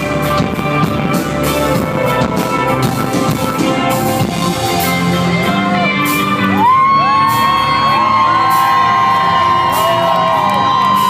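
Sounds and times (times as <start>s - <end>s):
live rock band playing: 0.0s - 11.0s
audience whooping and cheering: 6.4s - 11.0s.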